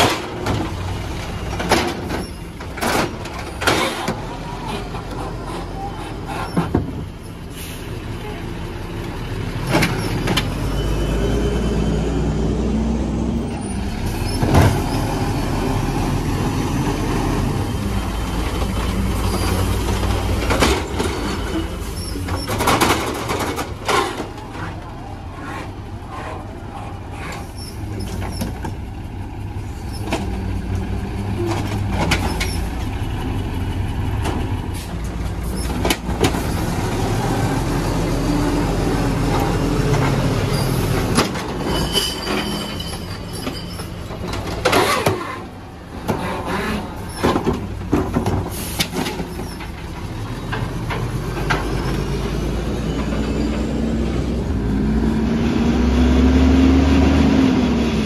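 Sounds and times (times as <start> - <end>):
truck engine revving: 9.2 - 28.7, 29.5 - 41.7, 48.5 - 58.0.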